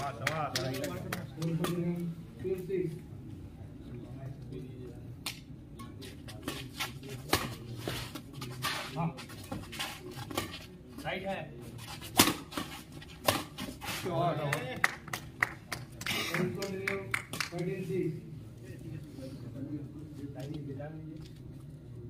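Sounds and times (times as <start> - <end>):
racket striking shuttlecock: 12.1 - 13.6.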